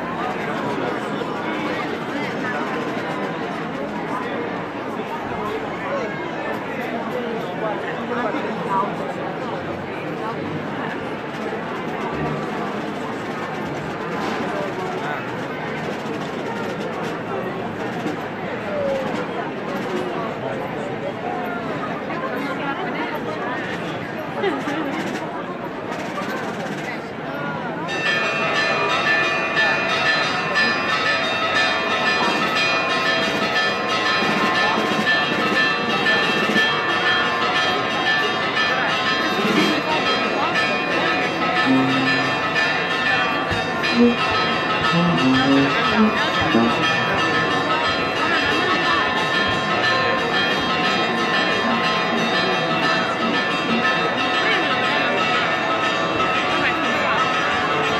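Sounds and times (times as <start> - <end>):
chatter of large crowd: 0.0 - 57.9
church bells pealing: 27.8 - 57.9.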